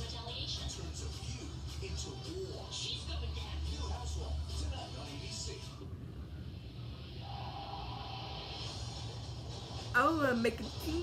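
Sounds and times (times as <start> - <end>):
faint television audio with music: 0.0 - 11.0
steady low hum: 0.0 - 11.0.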